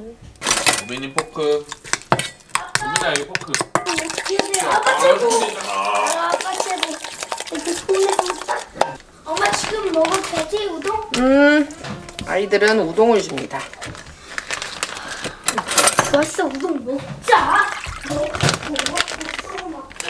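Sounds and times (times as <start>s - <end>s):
metal spoon scraping a steel bowl: 0.6s - 9.0s.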